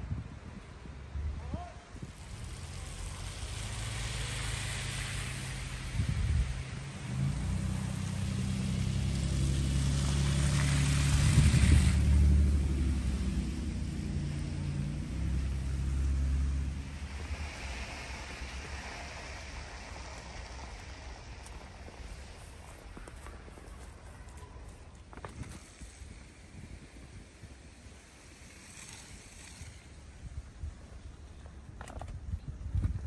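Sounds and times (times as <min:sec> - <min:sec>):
brief hiss: 0:25.4 - 0:30.5.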